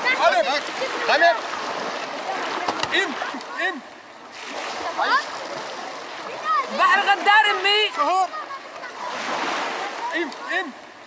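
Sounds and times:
sea water splashing: 0.0s - 11.0s
voices: 0.0s - 11.0s.

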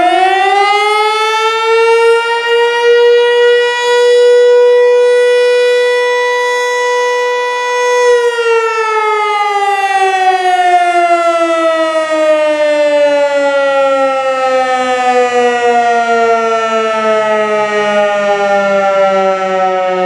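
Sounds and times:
electromechanical siren winding down: 0.0s - 20.0s.

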